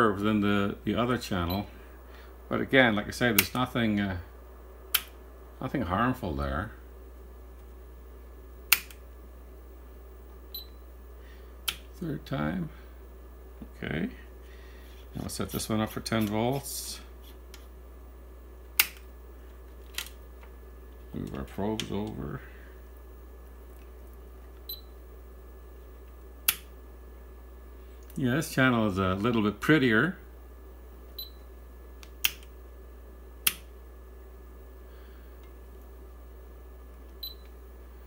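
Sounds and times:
steady low hum: 0.0s - 38.0s
power switch click: 8.7s - 9.0s, 18.8s - 19.0s, 33.4s - 33.7s.

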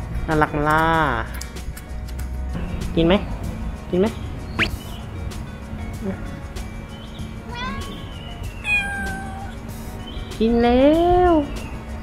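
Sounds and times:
cat meowing: 7.5s - 9.6s.

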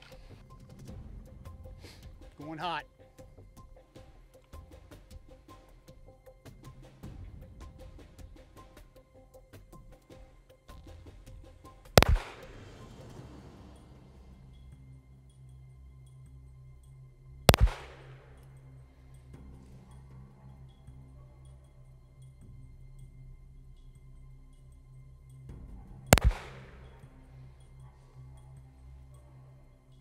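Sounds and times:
pistol shot with echo: 12.0s - 12.8s, 17.5s - 18.4s, 26.1s - 27.0s.

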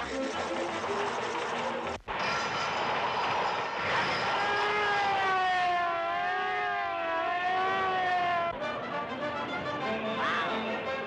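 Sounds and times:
wailing siren-like tone: 2.2s - 8.9s.

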